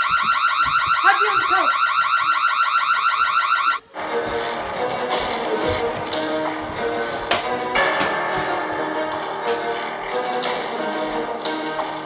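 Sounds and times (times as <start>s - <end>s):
electronic warbling alarm: 0.0s - 3.8s
background music: 3.8s - 12.0s.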